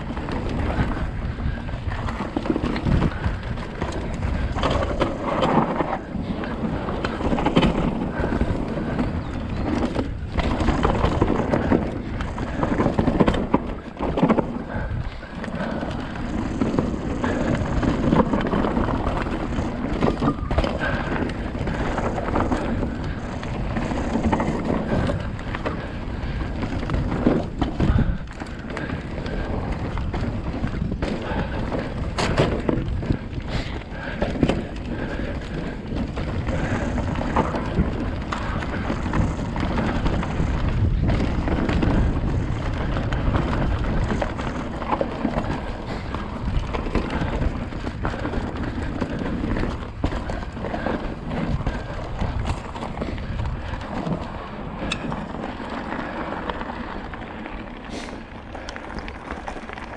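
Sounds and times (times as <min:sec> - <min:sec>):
bike knocks and rattles: 0:00.0 - 0:59.9
bike tyres rolling and skidding: 0:00.0 - 0:59.9
wind buffeting microphone: 0:00.0 - 0:59.9.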